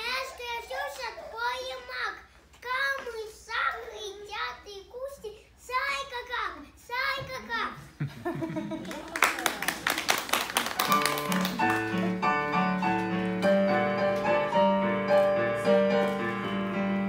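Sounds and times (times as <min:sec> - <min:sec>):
hand claps: 0:08.8 - 0:13.4
keyboard dance music: 0:11.0 - 0:17.0.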